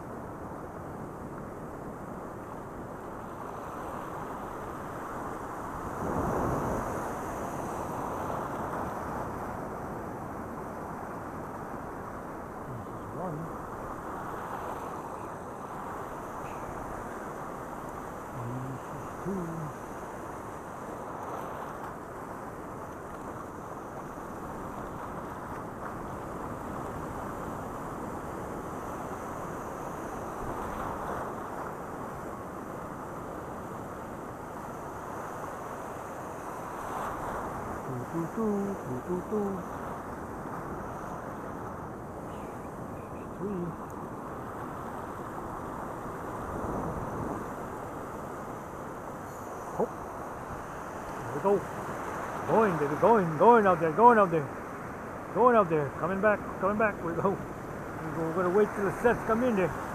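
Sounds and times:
wind buffeting microphone: 0.0s - 21.2s, 21.9s - 53.3s
ocean surf washing in: 0.0s - 59.9s.

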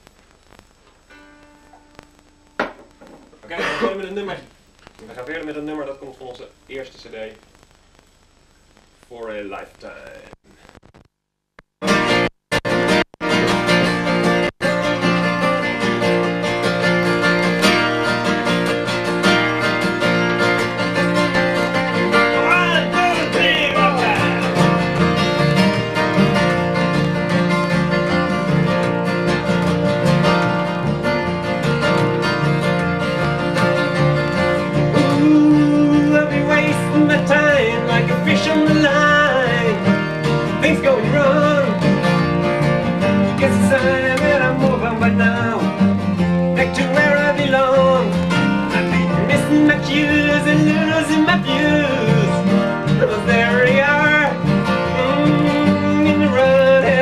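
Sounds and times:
acoustic guitars: 0.0s - 5.5s, 11.8s - 57.0s
double bass: 21.2s - 57.0s.

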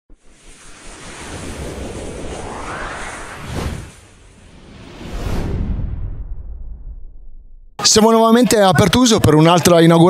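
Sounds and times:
whoosh sound effect: 0.1s - 7.7s
low rumble: 0.1s - 7.8s.

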